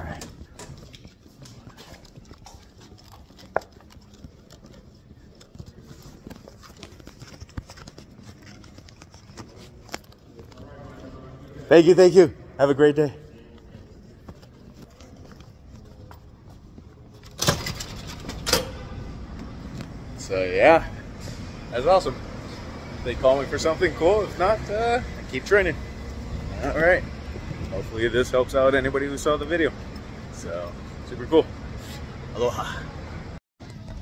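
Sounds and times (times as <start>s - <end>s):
footsteps walking: 0.0s - 11.7s, 13.0s - 17.4s, 18.0s - 20.3s
low rumble of traffic: 0.0s - 34.0s.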